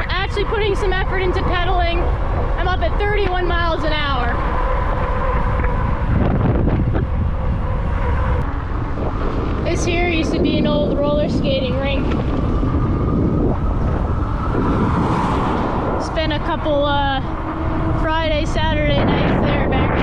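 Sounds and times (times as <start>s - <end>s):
bending pitched sounds: 0.0s - 20.0s
wind buffeting microphone: 0.0s - 20.0s.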